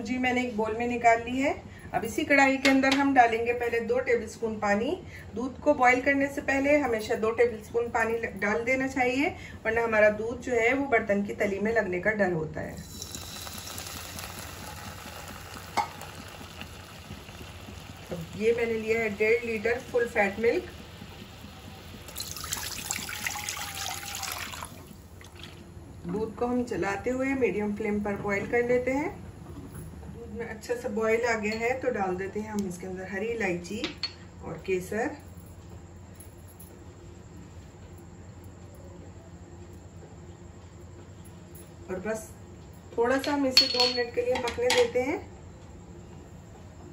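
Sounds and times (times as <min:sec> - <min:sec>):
faint low hum with hiss: 0:00.0 - 0:46.9
water sizzling in hot pan: 0:12.8 - 0:25.6.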